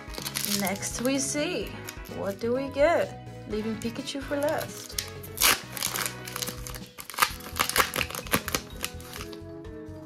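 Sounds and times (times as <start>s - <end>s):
foil wrapper tearing and crinkling: 0.0s - 2.1s, 4.4s - 9.4s
background music: 0.0s - 10.0s.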